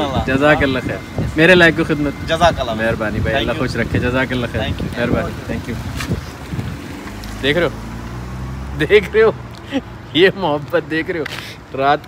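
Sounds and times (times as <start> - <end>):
wind noise on microphone: 0.0 - 7.2.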